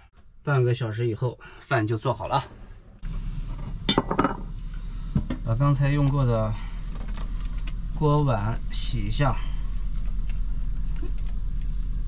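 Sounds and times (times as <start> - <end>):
steady low hum: 0.0 - 12.0
bowl and pots knocking together: 3.9 - 4.4.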